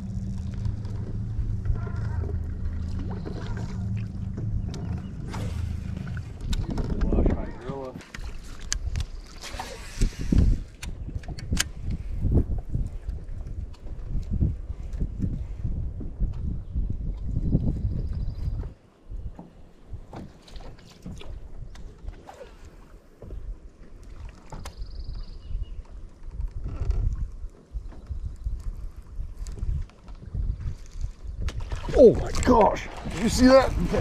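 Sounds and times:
wind buffeting microphone: 0.0s - 20.2s, 24.6s - 34.0s.

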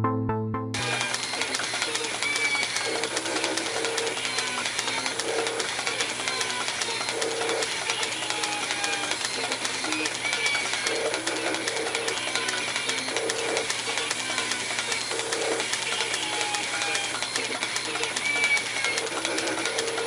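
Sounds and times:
metal lathe clattering: 0.8s - 20.0s.

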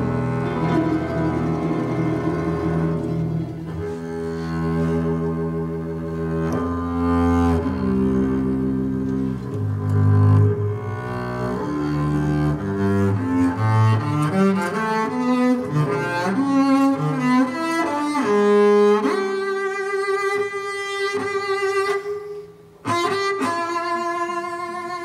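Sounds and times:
double bass solo: 0.0s - 20.3s.

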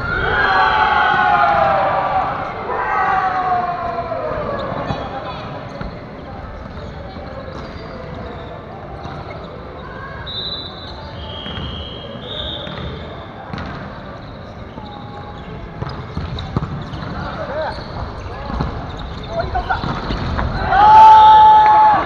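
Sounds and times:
voices echoing in a hall: 0.0s - 22.0s
sneaker squeaks on wooden floor: 4.5s - 20.8s.

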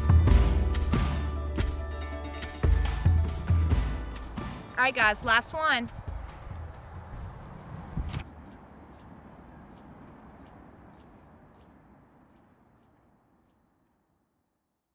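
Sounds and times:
open field ambience: 0.0s - 14.9s
sharp click: 8.0s - 8.3s.

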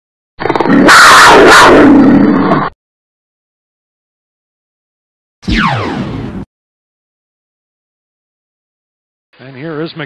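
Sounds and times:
lion roar sound effect: 0.4s - 2.7s.

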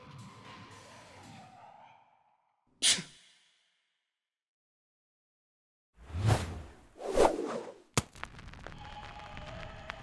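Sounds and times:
music: 0.0s - 1.8s.

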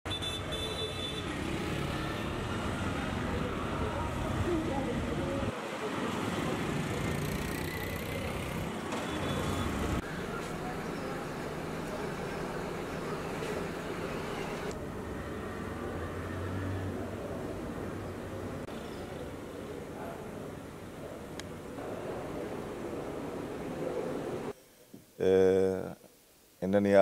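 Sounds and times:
street traffic: 0.0s - 24.6s
auto-rickshaw engines running: 0.3s - 24.5s.

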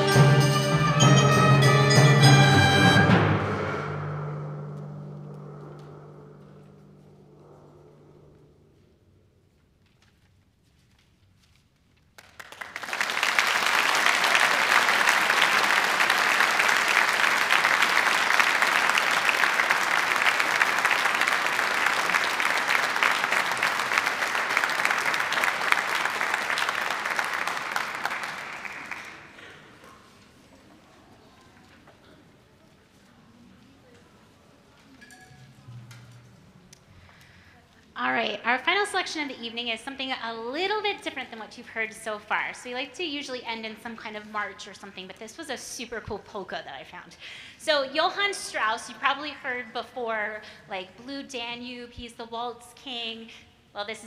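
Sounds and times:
hall reverberation: 0.0s - 9.4s
audience applauding: 12.2s - 29.8s.

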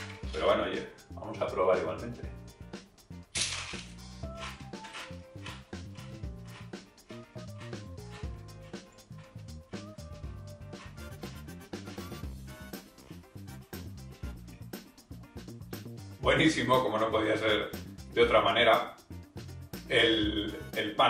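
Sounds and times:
soft background music: 0.0s - 21.0s
crunchy chewing: 4.3s - 9.8s.

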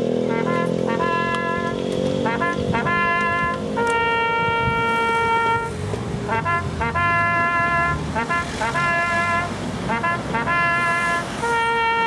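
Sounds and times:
bugle military call: 0.3s - 12.0s.

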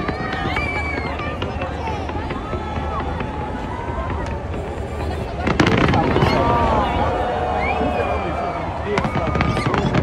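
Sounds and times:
crowd chatter and calls: 0.0s - 10.0s
fireworks crackling and banging: 0.0s - 10.0s.

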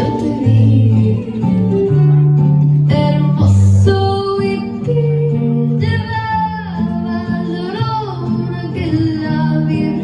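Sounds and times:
bass line: 0.0s - 10.0s
guitar: 0.0s - 10.0s.

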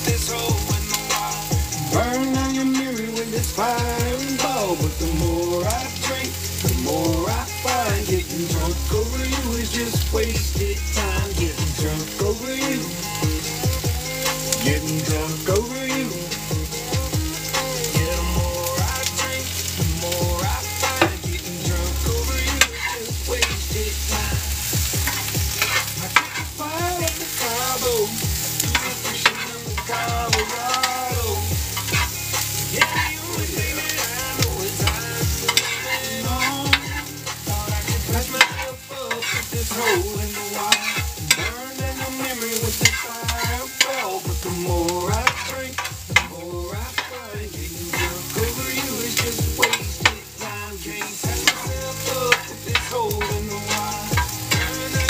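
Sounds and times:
vegetables sizzling in a pan: 0.0s - 55.0s
utensil clicking against pan: 18.7s - 50.3s, 51.0s - 55.0s
utensil scraping a pan: 18.9s - 55.0s.

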